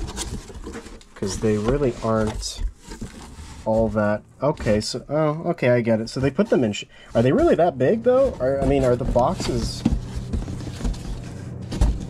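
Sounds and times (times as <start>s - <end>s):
cardboard boxes scraping: 0.0s - 5.0s, 5.8s - 12.0s
dull thump: 7.4s - 12.0s.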